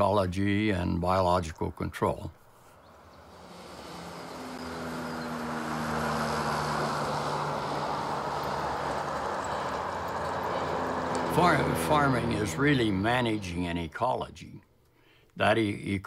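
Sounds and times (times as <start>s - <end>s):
low-flying propeller plane engine: 2.6s - 13.9s.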